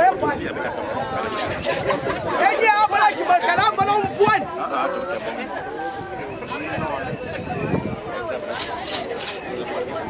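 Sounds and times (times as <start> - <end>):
crowd chattering: 0.0 - 10.0.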